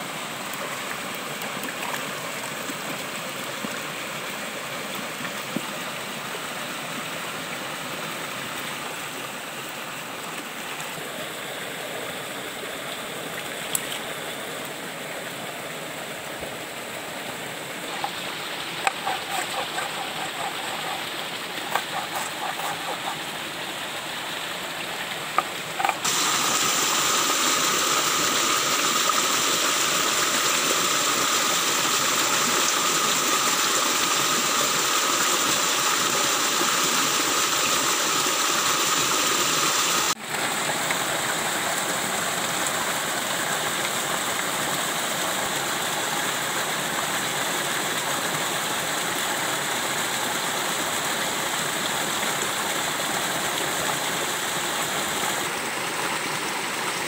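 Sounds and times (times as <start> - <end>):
stream water rushing over rock: 0.0 - 57.0.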